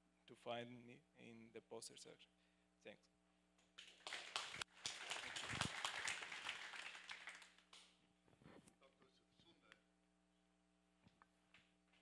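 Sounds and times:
audience applauding: 3.8 - 7.8.

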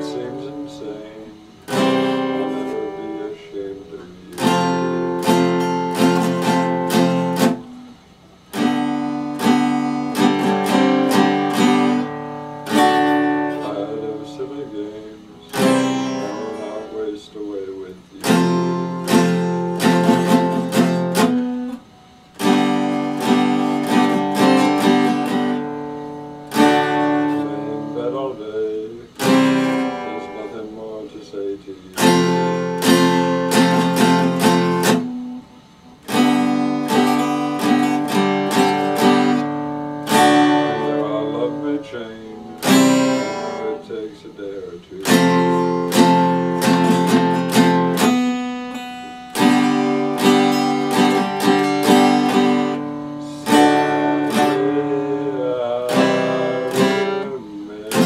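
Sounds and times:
acoustic guitar strumming chords: 0.0 - 58.0.

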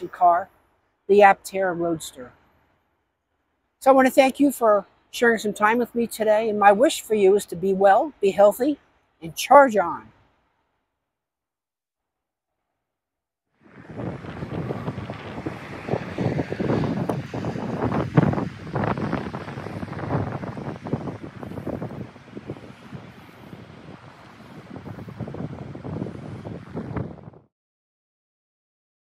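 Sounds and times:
wind buffeting microphone: 13.6 - 27.5.

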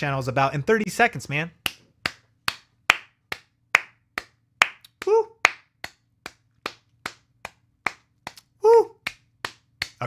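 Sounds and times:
person clapping hands: 1.6 - 10.0.

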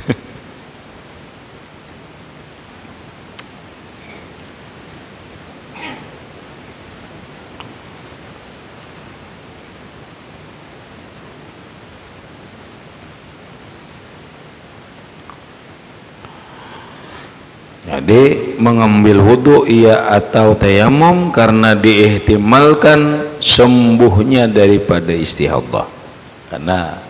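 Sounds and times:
steady background hiss: 0.0 - 27.0.

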